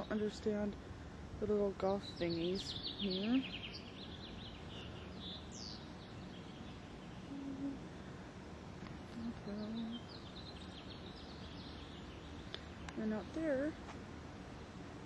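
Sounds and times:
small birds chirping: 0:00.0 - 0:14.8
steady background noise: 0:00.0 - 0:15.0.

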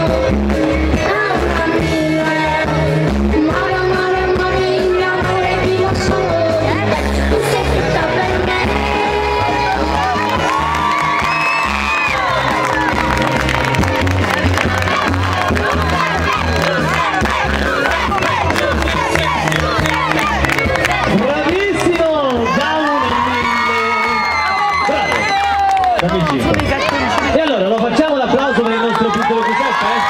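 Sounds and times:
backing track music: 0:00.0 - 0:27.6
crowd cheering and clapping: 0:07.1 - 0:30.0
children shouting: 0:08.3 - 0:21.2.

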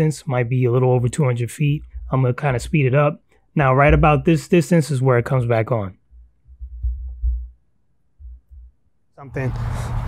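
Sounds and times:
muffled thumps and rumble: 0:06.1 - 0:07.6, 0:08.2 - 0:08.8.

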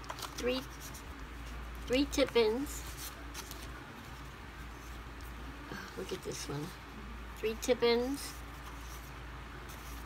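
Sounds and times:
paper cards rustling: 0:00.0 - 0:05.4, 0:07.5 - 0:10.0
steady low hum: 0:00.0 - 0:10.0.

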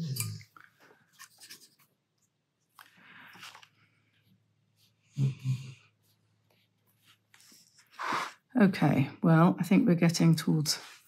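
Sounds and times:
paintbrush scratching on paper: 0:05.9 - 0:08.5, 0:10.7 - 0:11.0.

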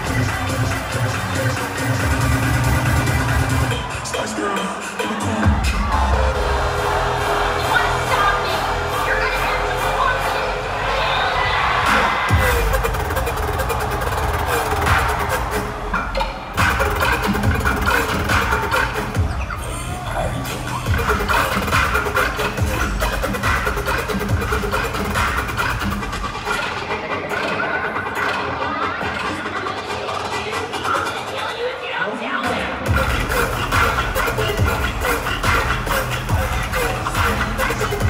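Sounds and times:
pulsing sub-bass line: 0:00.0 - 0:04.2, 0:05.3 - 0:26.5, 0:32.9 - 0:38.0.

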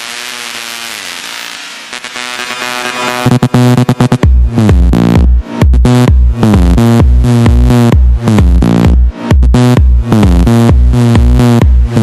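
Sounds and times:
buzzy dubstep synthesizer tone: 0:00.0 - 0:12.0.

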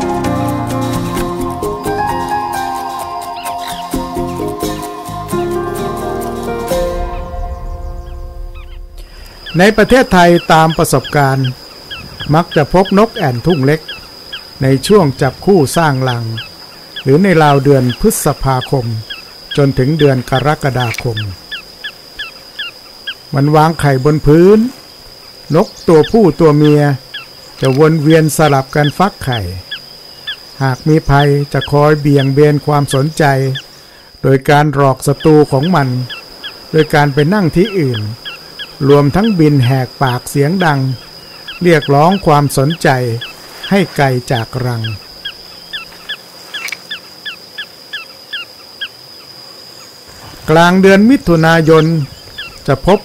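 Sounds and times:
bird calling sharp notes: 0:00.0 - 0:34.0, 0:34.9 - 0:53.0
steady high-pitched whine: 0:07.0 - 0:29.8.

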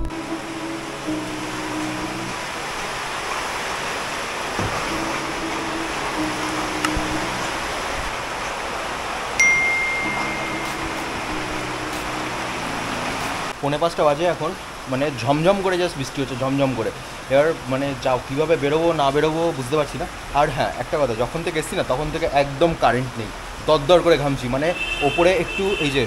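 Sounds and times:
soft music with held notes: 0:00.0 - 0:02.5, 0:04.7 - 0:08.2, 0:09.4 - 0:13.5
heavy rain pouring: 0:00.0 - 0:26.0
bright ringing note: 0:04.7 - 0:07.8, 0:09.4 - 0:12.8.

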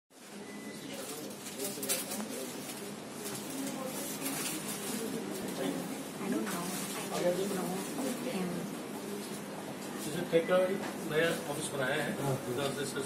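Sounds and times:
people chattering: 0:00.2 - 0:13.0.

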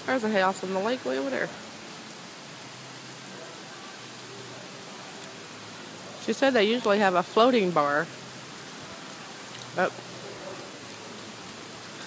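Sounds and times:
light rain falling: 0:00.0 - 0:12.0.

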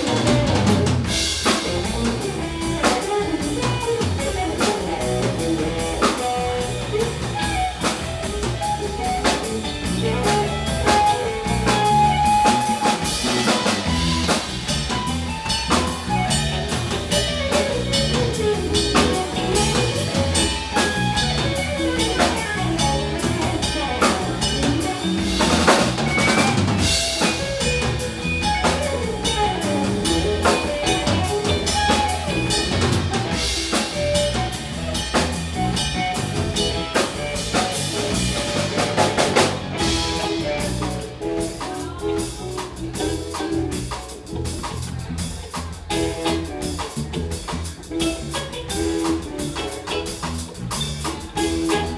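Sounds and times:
busy drumming: 0:00.0 - 0:51.9
electric bass: 0:00.0 - 0:51.9
electric guitar line: 0:00.0 - 0:51.9.

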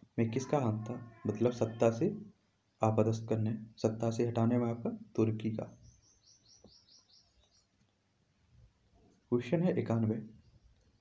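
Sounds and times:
small bird chirping: 0:05.6 - 0:08.0, 0:10.3 - 0:11.0.

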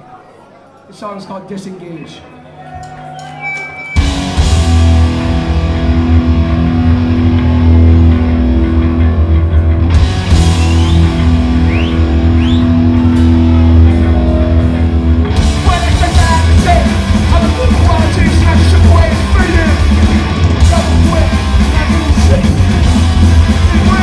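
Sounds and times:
punk band playing live: 0:03.3 - 0:24.0.

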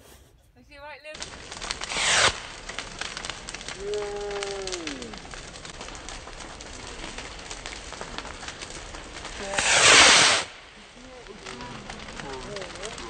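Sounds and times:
fireworks crackling and popping: 0:01.0 - 0:13.0.

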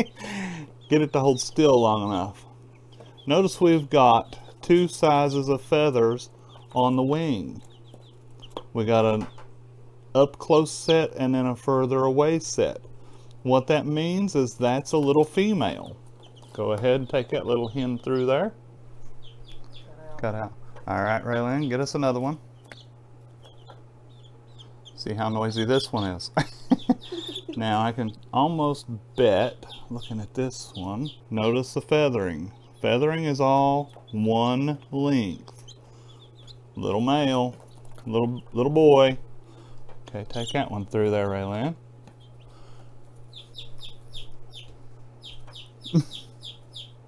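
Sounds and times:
chicks peeping: 0:00.0 - 0:47.0
steady low hum: 0:00.0 - 0:47.0.

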